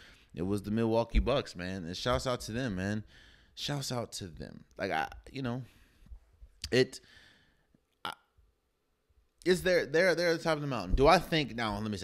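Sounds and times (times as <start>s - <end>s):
man breathing out: 7.0s - 7.7s.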